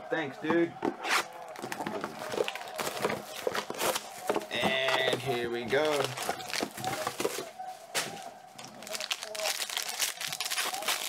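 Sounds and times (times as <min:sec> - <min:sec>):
plastic wrap tearing and crinkling: 0:01.1 - 0:05.1, 0:05.7 - 0:11.0.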